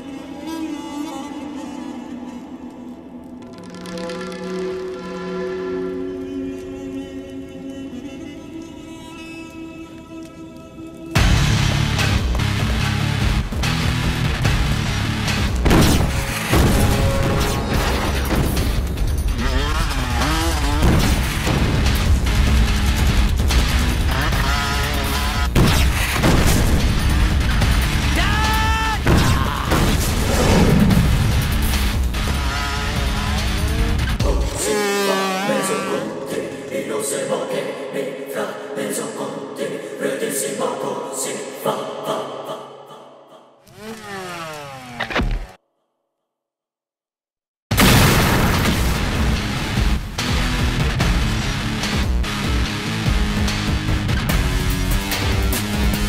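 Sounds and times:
wordless choir over music: 0:04.4 - 0:11.6, 0:34.1 - 0:43.6
car engine revving: 0:11.8 - 0:28.2, 0:30.2 - 0:36.2, 0:43.7 - 0:45.6
loud bang: 0:47.7 - 0:49.7.

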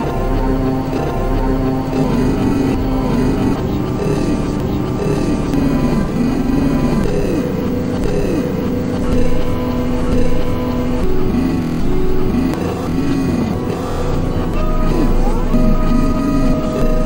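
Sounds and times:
electronic synthesizer drone: 0:00.0 - 0:17.0
swooping synth pitch arcs: 0:00.0 - 0:17.0.

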